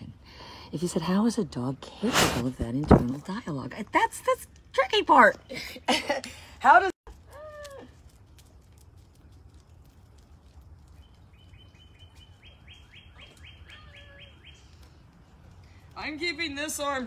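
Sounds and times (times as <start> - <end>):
bird chirping: 10.8 - 15.7.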